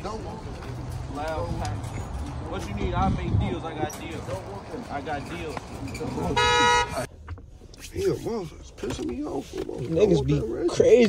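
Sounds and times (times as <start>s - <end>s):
car horn honk: 6.2s - 7.1s.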